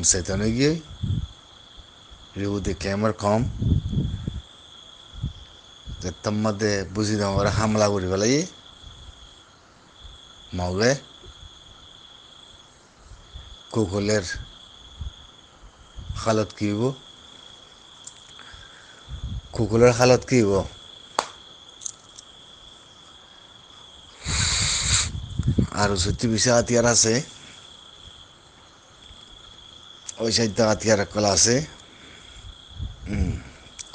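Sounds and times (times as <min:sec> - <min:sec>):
cricket trilling: 0:00.0 - 0:33.9
man's voice: 0:25.6 - 0:27.4, 0:30.1 - 0:31.8.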